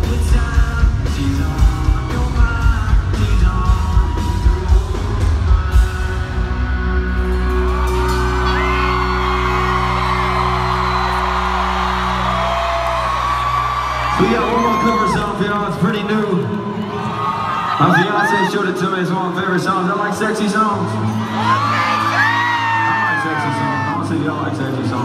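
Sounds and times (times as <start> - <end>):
person singing: 0.0 - 8.8
live band music: 0.0 - 16.4
crowd cheering: 3.6 - 25.0.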